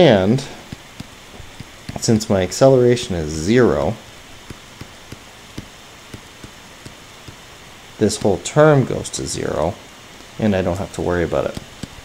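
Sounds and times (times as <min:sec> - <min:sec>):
steady hiss: 0:00.0 - 0:12.0
stylus tapping on tablet screen: 0:00.7 - 0:02.3, 0:03.3 - 0:07.4, 0:08.0 - 0:08.4, 0:11.5 - 0:12.0.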